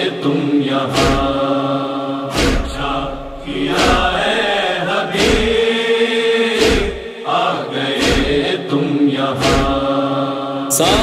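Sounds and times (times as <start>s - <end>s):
wordless chorus chanting: 0.0s - 11.0s.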